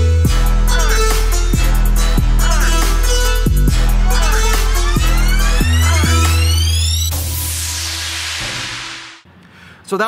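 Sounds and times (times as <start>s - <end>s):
electronic music: 0.0s - 9.2s.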